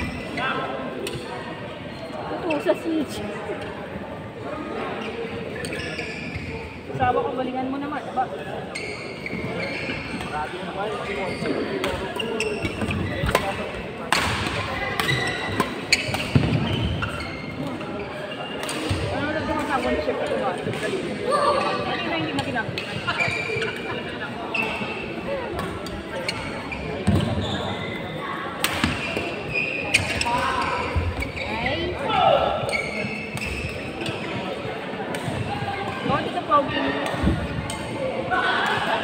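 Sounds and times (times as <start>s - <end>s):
voices echoing in hall: 0.0s - 39.0s
shoes squeaking on court: 5.0s - 6.8s, 8.6s - 13.7s, 14.8s - 20.9s, 21.9s - 28.2s, 28.8s - 31.9s, 32.6s - 34.6s
racket hitting shuttlecock: 28.6s - 29.2s.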